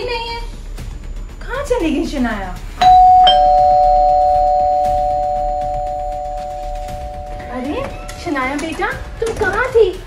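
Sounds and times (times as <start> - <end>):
two-tone doorbell chime: 2.8 - 8.2.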